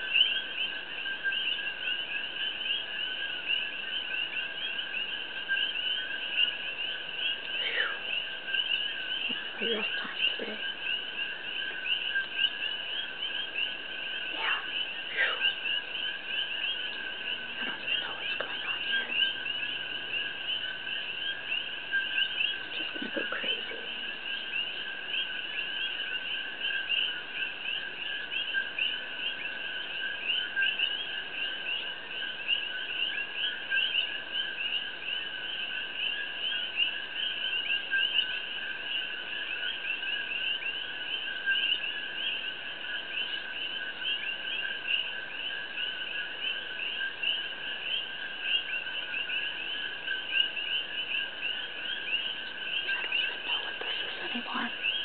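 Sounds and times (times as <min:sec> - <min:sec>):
rapid pulsing animal calls: 0:04.6 - 0:34.1, 0:35.5 - 0:55.0
steady high animal tone: 0:14.2 - 0:20.2, 0:52.0 - 0:55.0.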